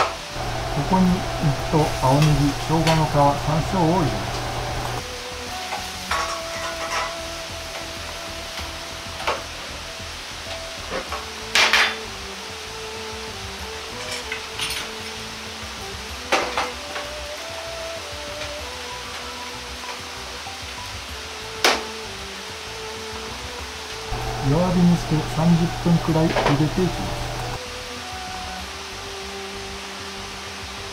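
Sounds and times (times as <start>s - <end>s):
soft background music: 0.0s - 4.3s, 5.0s - 30.9s
water hissing in wok: 0.1s - 11.5s.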